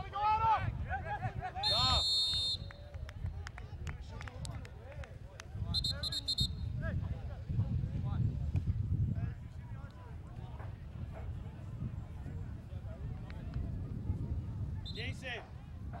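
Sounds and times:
sports whistle blasts: 1.6s - 2.8s, 5.7s - 6.7s.

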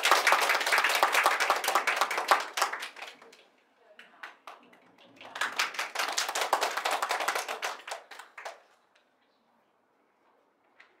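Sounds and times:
audience applauding: 0.0s - 3.4s, 5.2s - 8.7s.

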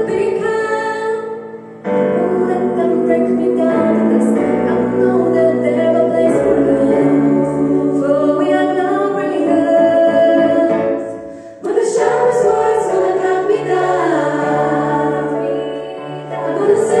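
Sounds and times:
female vocal ensemble singing: 0.0s - 17.0s
low piano notes: 1.6s - 17.0s.

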